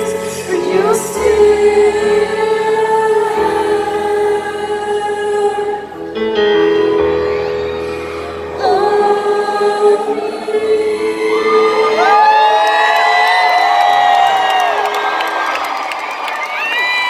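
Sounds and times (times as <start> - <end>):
grand piano playing: 0.0 - 16.1
audience whooping and cheering: 11.2 - 17.0.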